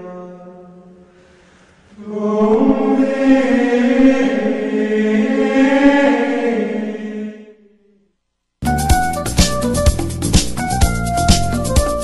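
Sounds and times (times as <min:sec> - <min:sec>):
choir chanting long sung note: 0:00.0 - 0:08.0.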